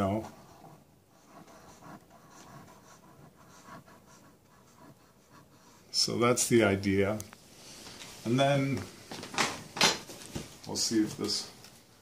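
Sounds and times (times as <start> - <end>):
marker scratching on cardboard: 0.0 - 6.0.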